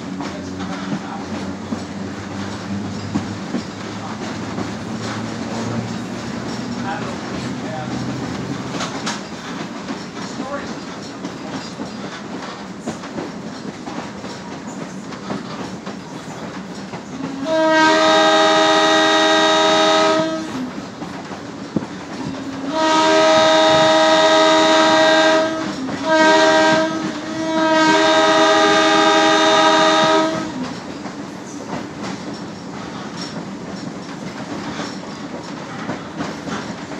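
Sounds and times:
train rumbling along rails: 0.0s - 36.9s
wheels clickety-clack: 0.0s - 36.9s
train horn chord: 17.3s - 20.7s, 22.6s - 30.6s.

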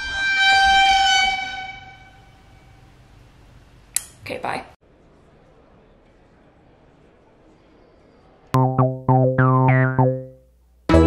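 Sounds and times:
held high note: 8.6s - 10.4s.

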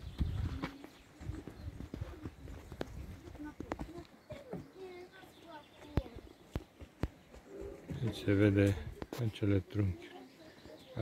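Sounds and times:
faint voices: 0.3s - 11.0s.

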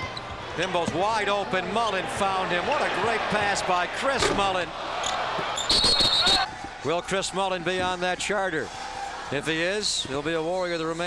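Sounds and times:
arena noise: 0.0s - 11.0s.

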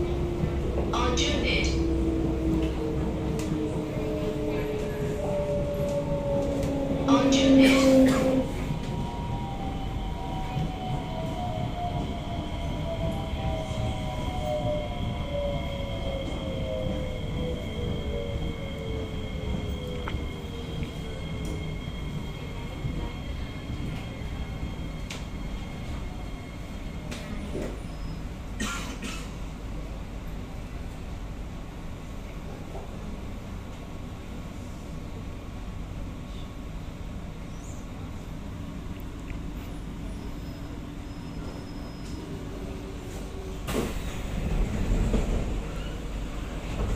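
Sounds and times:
train doors opening: 0.0s - 9.5s, 26.9s - 29.4s, 40.2s - 46.9s
train wheels rumbling on track: 0.0s - 46.9s.

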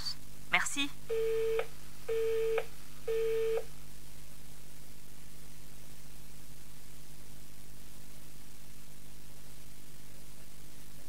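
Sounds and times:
telephone busy tone beeps: 1.1s - 3.7s.

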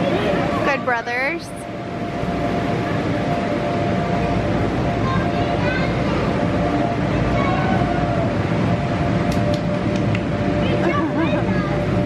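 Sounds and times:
air blowers droning: 0.0s - 12.0s
distant children's voices: 4.8s - 8.5s.

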